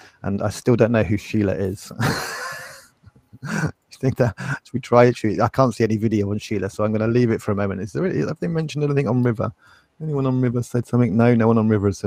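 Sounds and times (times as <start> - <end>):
man's breathy laugh: 2.0 - 4.6.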